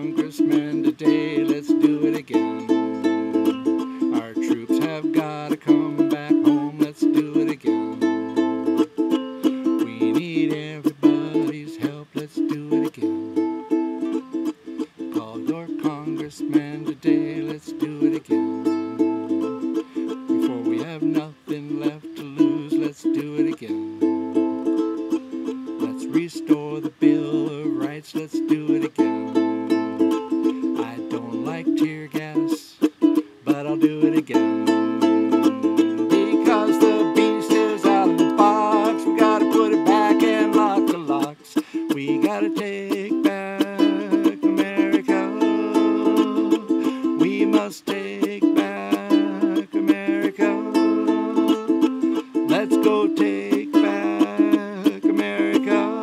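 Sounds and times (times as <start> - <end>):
ukulele strummed: 0.0 - 56.0.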